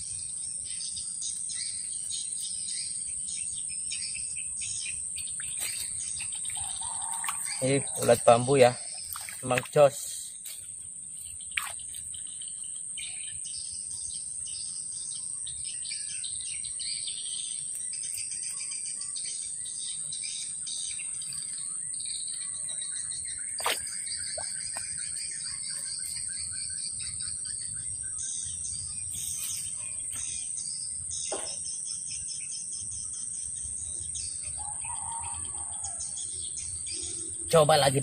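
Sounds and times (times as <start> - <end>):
birds chirping: 0.0 - 38.0
insects droning: 0.0 - 38.0.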